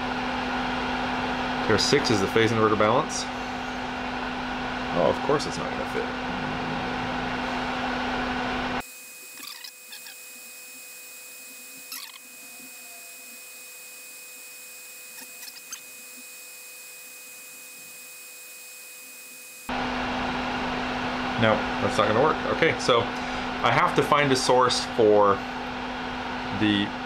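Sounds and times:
background hum and noise: 0:00.0 - 0:14.0, 0:19.6 - 0:27.0.

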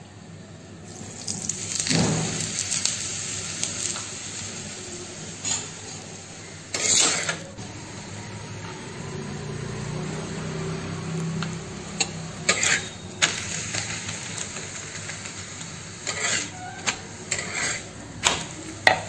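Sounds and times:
oil sizzling on hot griddle: 0:00.8 - 0:08.5, 0:09.1 - 0:19.0.

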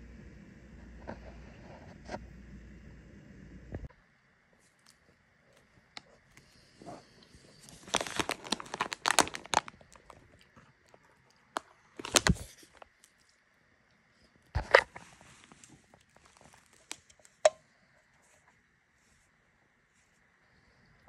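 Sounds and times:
plastic snack bag crinkling: 0:07.4 - 0:13.4, 0:15.4 - 0:17.5.

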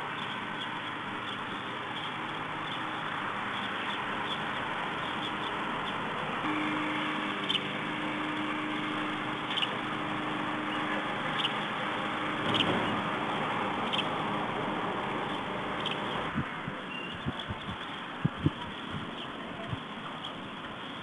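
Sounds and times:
faint steady hum: 0:00.0 - 0:21.0
outdoor background noise: 0:00.0 - 0:21.0.

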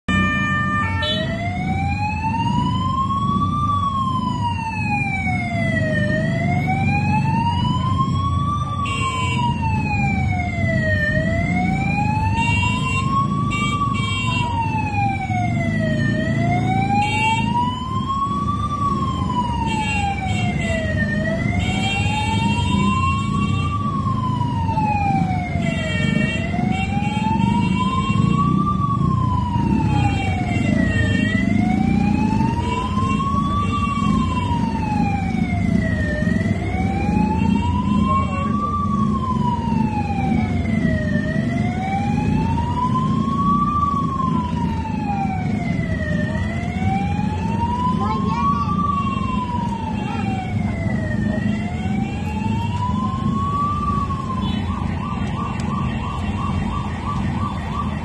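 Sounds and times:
siren wailing: 0:00.1 - 0:58.0
street noise rumble: 0:00.1 - 0:58.0.

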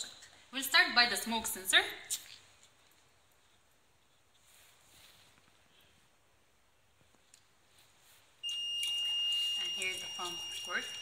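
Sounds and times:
smoke detector buzzer tone: 0:08.4 - 0:11.0.

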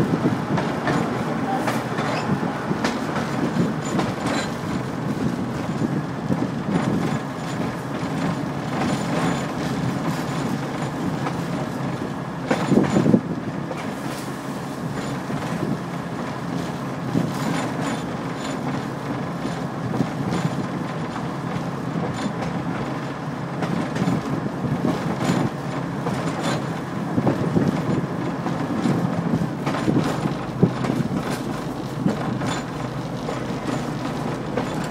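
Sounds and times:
rail car jolt: 0:00.0 - 0:34.9
rail car wheels rumbling: 0:00.0 - 0:34.9
rail joint clacks: 0:00.0 - 0:34.9.

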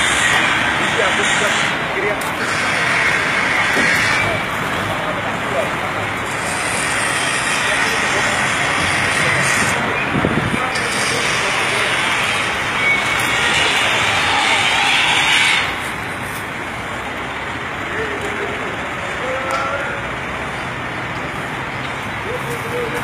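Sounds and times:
indistinct background voices: 0:00.0 - 0:23.0
steady traffic: 0:00.0 - 0:23.0.

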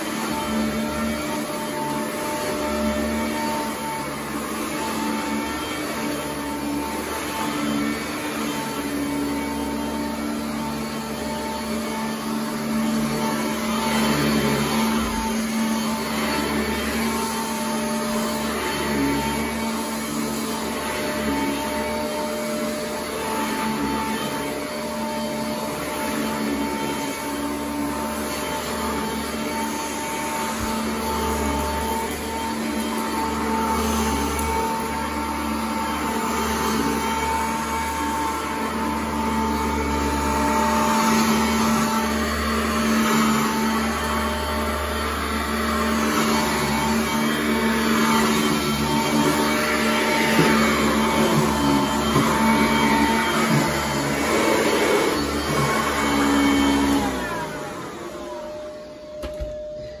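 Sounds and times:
vacuum cleaner running over carpet: 0:00.0 - 1:00.0.

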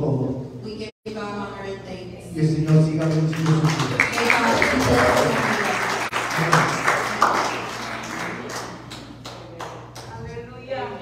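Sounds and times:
congregation applauding: 0:02.7 - 0:10.1.

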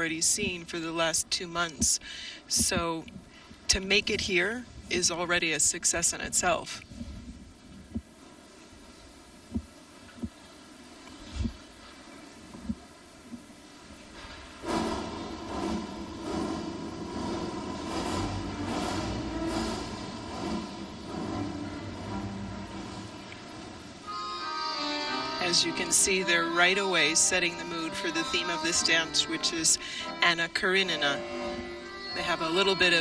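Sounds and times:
noisy sound effect over speakers: 0:00.0 - 0:08.2, 0:12.6 - 0:33.0.

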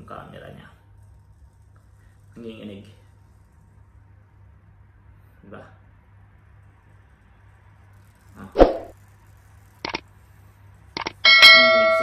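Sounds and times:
short clicks: 0:09.8 - 0:10.0, 0:11.0 - 0:11.2
bell-like chime: 0:11.3 - 0:12.0.

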